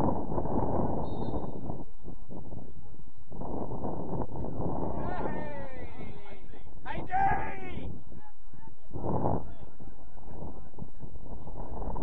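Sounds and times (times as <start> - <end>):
player shouting: 5.0 - 6.2, 6.9 - 7.9.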